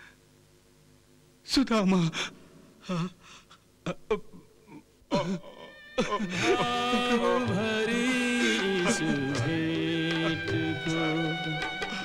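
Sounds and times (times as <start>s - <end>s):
man crying and sobbing: 1.9s - 12.0s.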